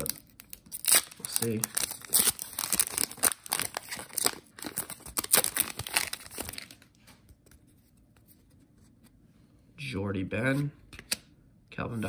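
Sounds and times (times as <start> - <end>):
foil wrapper tearing and crinkling: 0.0 - 6.8.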